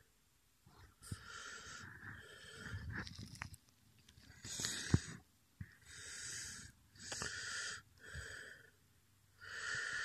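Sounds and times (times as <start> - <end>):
person breathing: 0.7 - 3.3, 4.3 - 10.0.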